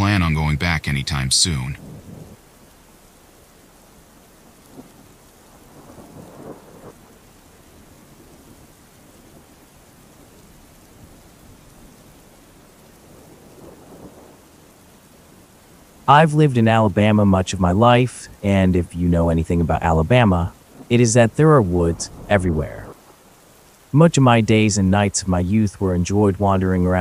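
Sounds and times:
distant thunder rumbles: 0.0 - 27.0
faint steady rain: 0.0 - 27.0.

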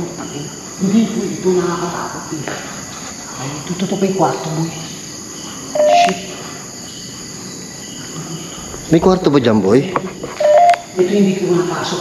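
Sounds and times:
crickets chirring: 0.0 - 12.0
two-note electronic beep: 5.8 - 6.2.

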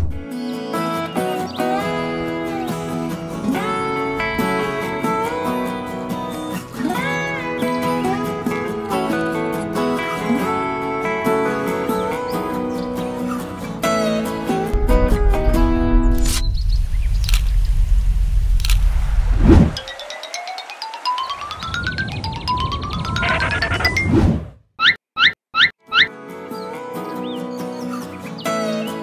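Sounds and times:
acoustic guitar music: 0.0 - 16.4, 25.8 - 29.0
low rumble with sharp hits: 14.7 - 19.8
squeaky boings: 22.4 - 24.2, 24.8 - 26.1.

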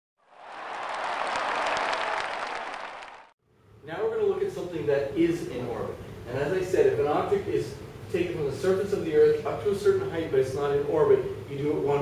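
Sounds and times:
crowd applauding: 0.2 - 3.4.

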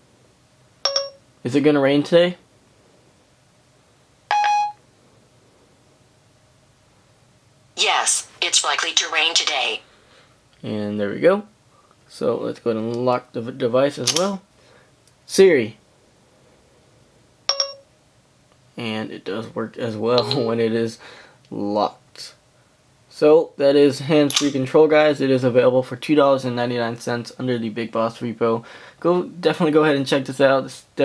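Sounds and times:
electronic chime tone: 0.9 - 1.2, 20.2 - 20.6.

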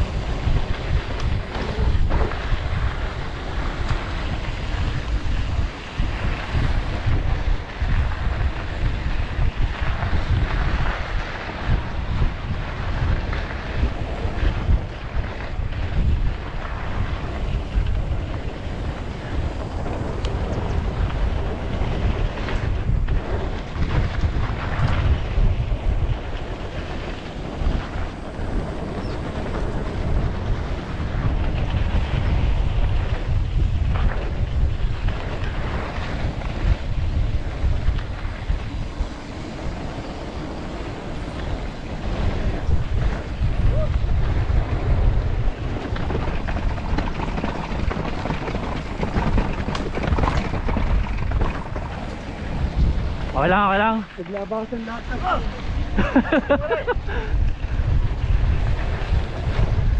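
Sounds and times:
tyres rolling on dirt trail: 0.0 - 59.9
wind buffeting microphone: 0.0 - 59.9.

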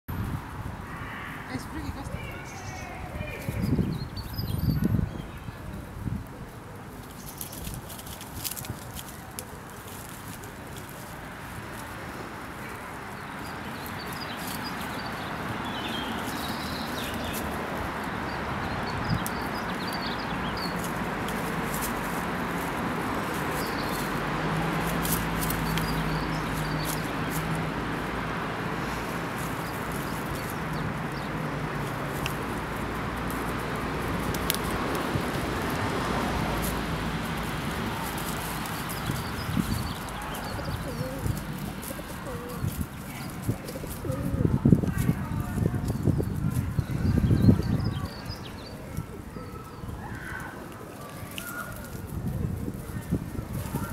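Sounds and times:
distant traffic rumble: 0.1 - 53.9
small birds chirping: 0.3 - 53.9
pigeon cooing: 34.4 - 44.6.

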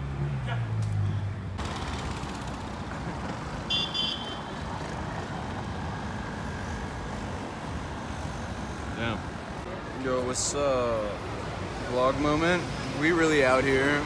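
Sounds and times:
cars driving past on cobbles: 0.0 - 5.8.

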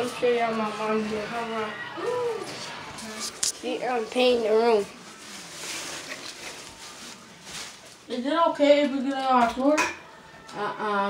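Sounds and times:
soft rustling: 2.4 - 8.1.

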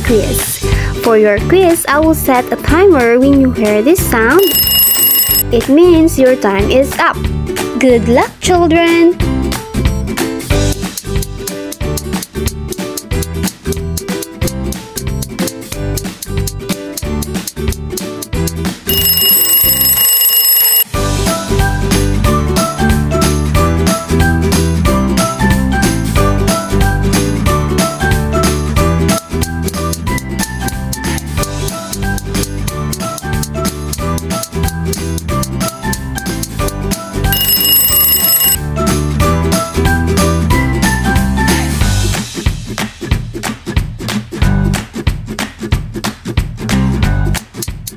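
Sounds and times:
alarm clock ringing: 4.4 - 5.4, 18.9 - 20.9, 37.3 - 38.6
music with drum beat and bass: 42.0 - 47.9.

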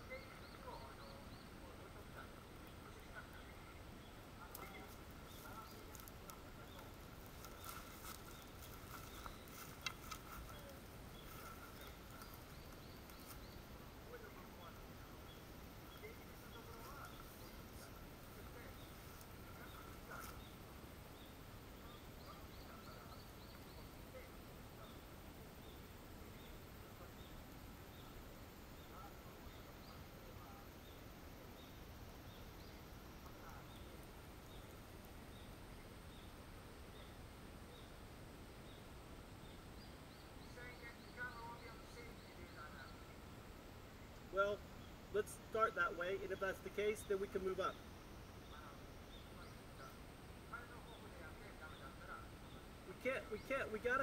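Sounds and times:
light clicks and rustles: 4.5 - 13.5.

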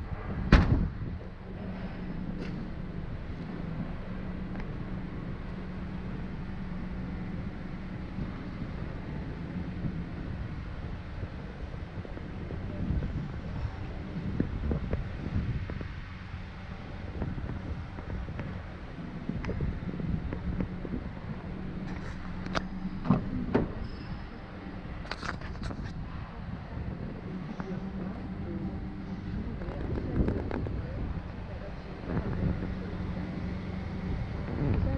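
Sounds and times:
steady low hum: 0.0 - 34.9
car door unlatching and opening: 21.8 - 23.9.

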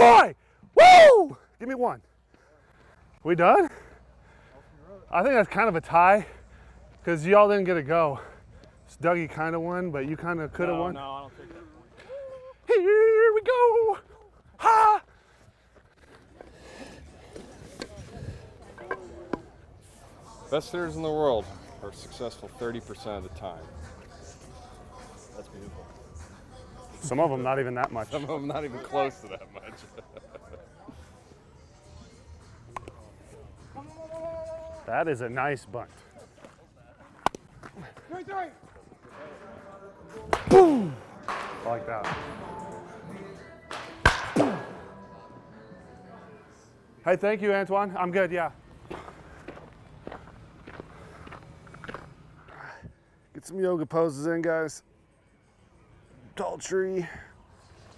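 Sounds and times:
faint voices: 11.1 - 27.2, 28.0 - 43.7
bat cracking a baseball: 40.2 - 42.4, 43.7 - 44.8.

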